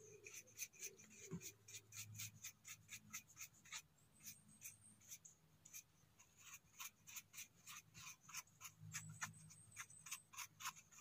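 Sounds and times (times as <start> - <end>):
brush scratching mushroom: 0.0 - 11.0.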